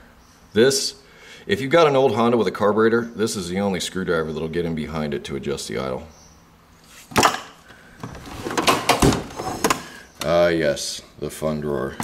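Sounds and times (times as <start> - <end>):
loose tools clattering: 7.2 - 9.9
drawer sliding on runners: 8.0 - 10.0
metal drawer knocking shut: 8.2 - 9.8.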